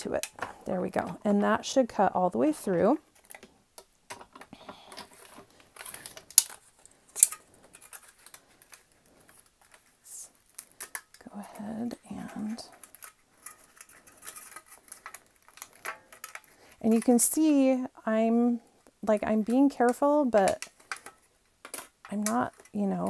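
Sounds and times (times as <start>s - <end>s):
aluminum sheet crinkling: 0.0s - 23.0s.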